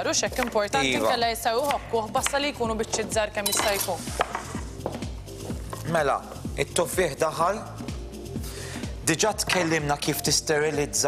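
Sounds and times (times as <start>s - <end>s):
knife chopping on wooden board: 0.3s - 0.7s, 1.6s - 5.1s.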